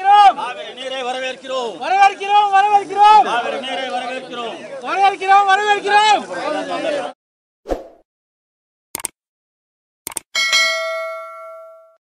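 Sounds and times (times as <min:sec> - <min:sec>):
mouse double click: 0:10.1 - 0:10.3
notification bell ding: 0:10.4 - 0:12.0.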